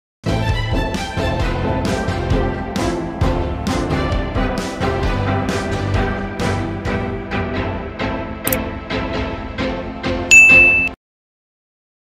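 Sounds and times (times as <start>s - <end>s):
bell ding sound effect: 10.3s - 11.0s.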